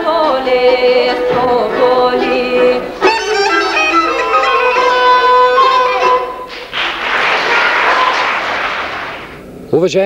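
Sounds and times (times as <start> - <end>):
folk bagpipe music: 0.0 - 8.3.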